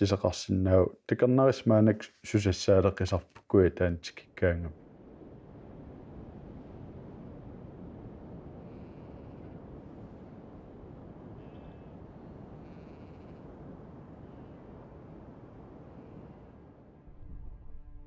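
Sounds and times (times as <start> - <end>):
low outdoor ambience rumbling: 0.0 - 18.0
faint high chirping calls: 11.3 - 13.4.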